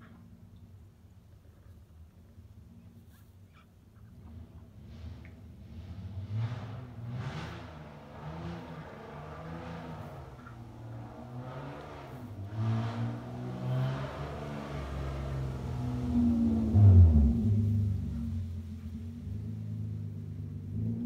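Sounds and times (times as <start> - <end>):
vehicle engine revving: 4.3 - 21.0.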